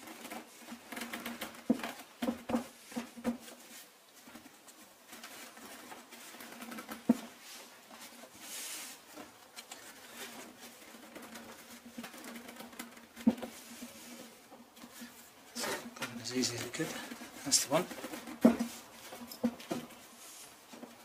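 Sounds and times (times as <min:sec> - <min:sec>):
fabric webbing rustling: 0:00.0 - 0:21.0.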